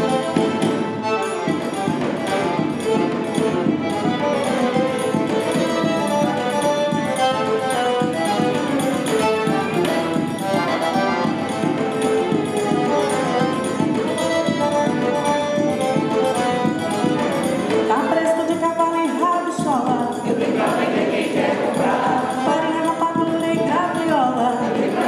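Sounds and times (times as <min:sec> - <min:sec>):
string quartet: 0:00.0 - 0:18.7
accordion: 0:00.0 - 0:25.0.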